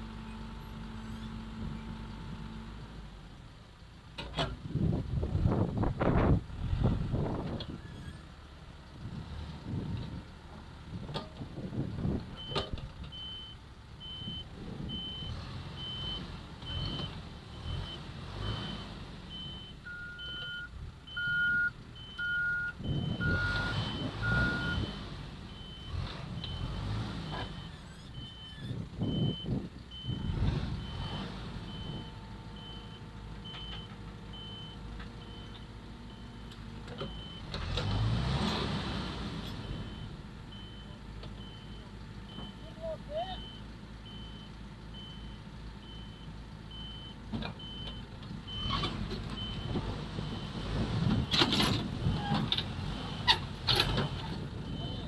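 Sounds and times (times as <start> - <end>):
diesel engines surging: 4.4 - 55.0
reverse alarm beeping: 19.4 - 24.9, 54.0 - 55.0.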